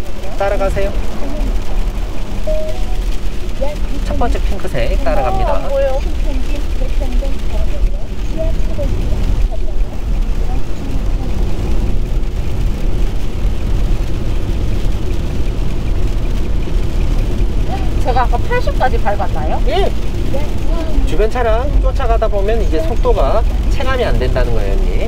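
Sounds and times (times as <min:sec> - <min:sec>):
road rumble inside car: 0:00.0 - 0:25.0.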